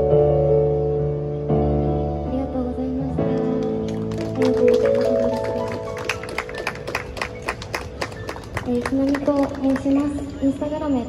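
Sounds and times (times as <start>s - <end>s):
audience clapping: 3.4s - 10.2s
woman's voice: 8.7s - 11.0s.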